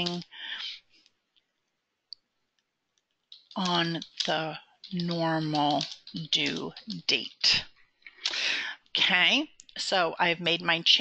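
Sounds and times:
keyboard clicks: 3.3s - 7.6s.

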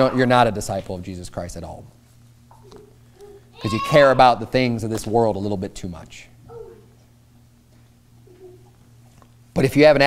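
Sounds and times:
low electrical hum: 0.0s - 10.0s
faint cooing: 6.5s - 7.0s, 8.2s - 8.8s.

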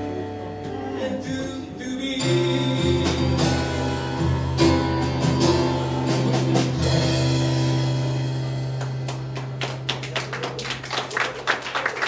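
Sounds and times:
audience clapping: 8.8s - 12.0s.

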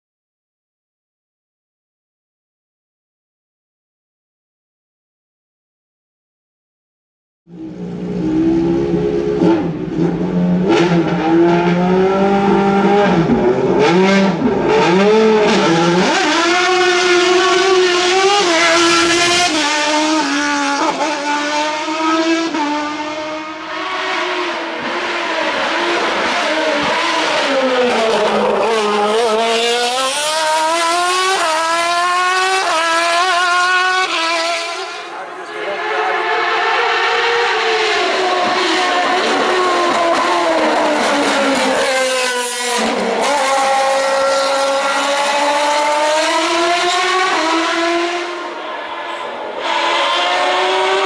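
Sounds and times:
race car engine revving: 7.5s - 51.0s.

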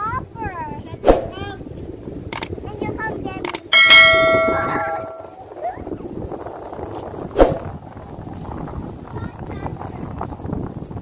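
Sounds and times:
notification bell ding: 3.8s - 5.4s.

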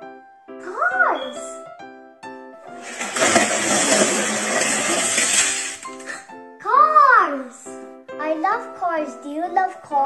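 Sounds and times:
child calling out: 0.6s - 1.6s.

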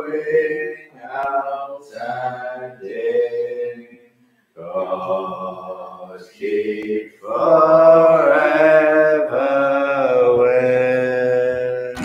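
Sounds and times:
unaccompanied singing of a psalm: 0.0s - 12.0s.

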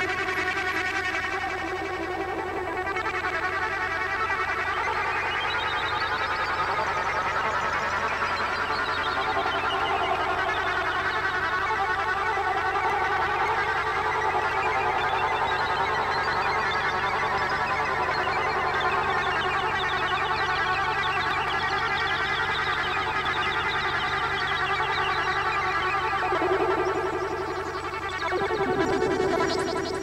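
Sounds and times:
fluttering electronic music: 22.5s - 30.0s.

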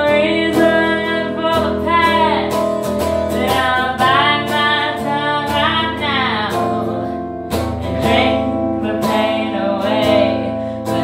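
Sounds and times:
strummed guitar: 0.0s - 11.0s
woman singing: 0.0s - 11.0s.

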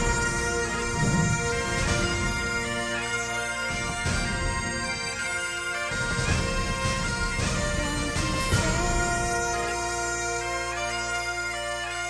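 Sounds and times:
bagpipe drone: 0.0s - 12.0s
bagpipes playing a tune: 0.0s - 12.0s.

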